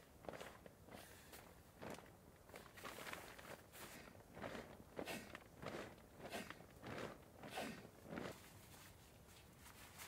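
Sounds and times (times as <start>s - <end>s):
rustling and crunching movement: 0.0s - 10.0s.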